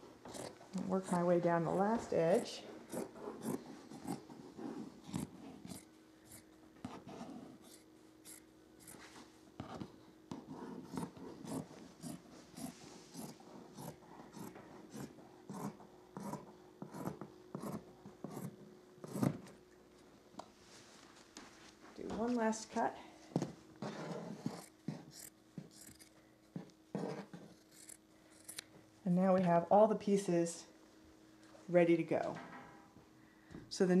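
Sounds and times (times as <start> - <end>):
scissors snipping: 24.5 - 26.1, 27.5 - 28.7.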